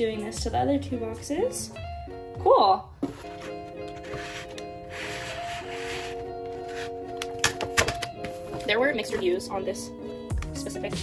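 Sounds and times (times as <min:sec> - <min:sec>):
background music with sustained chords: 0:00.0 - 0:11.0.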